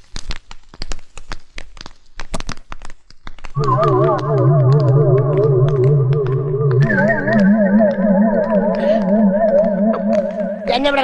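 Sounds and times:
eerie electronic music with drone: 3.6s - 11.0s.

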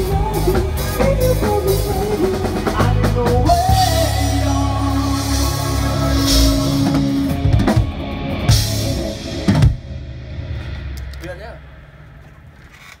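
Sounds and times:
live rock band: 0.0s - 12.2s.

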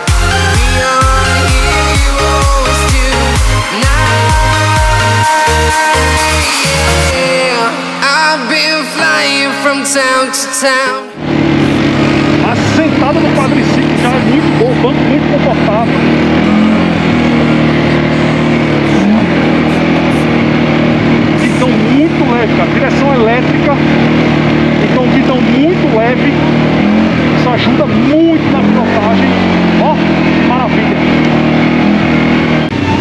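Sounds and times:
quad bike engine running: 0.0s - 7.6s, 11.2s - 33.0s
music: 0.0s - 11.8s, 32.7s - 33.0s.

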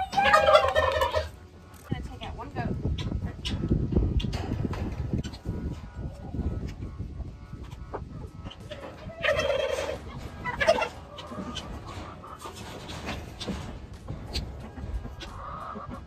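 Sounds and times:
turkey gobbling: 0.0s - 1.4s, 5.2s - 13.6s, 14.2s - 16.0s.

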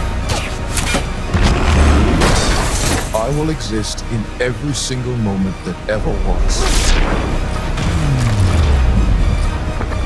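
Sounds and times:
cinematic trailer music: 0.0s - 10.0s.

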